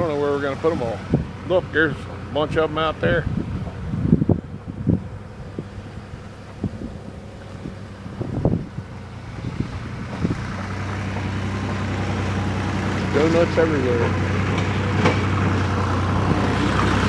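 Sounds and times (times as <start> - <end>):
wind buffeting microphone: 0.0 - 13.2, 14.1 - 17.0
vehicle engine humming: 0.0 - 17.0.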